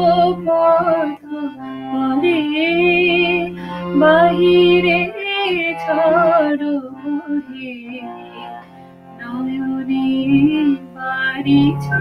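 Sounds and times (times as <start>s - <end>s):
woman singing with vibrato: 0.0s - 8.6s, 9.2s - 12.0s
instrumental accompaniment: 0.0s - 12.0s.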